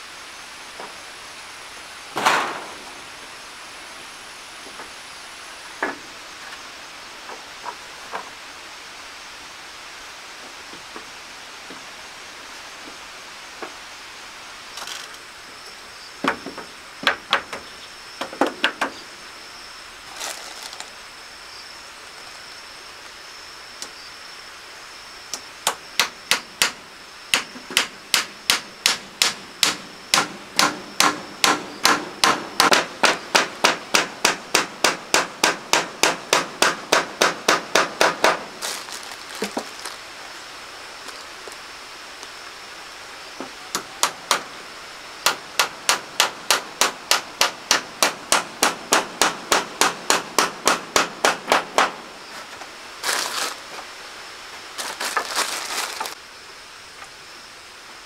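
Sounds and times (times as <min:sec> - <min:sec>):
rustle: 0:00.0 - 0:58.0
hammer driving nails into wood: 0:27.4 - 0:38.4, 0:45.2 - 0:52.0.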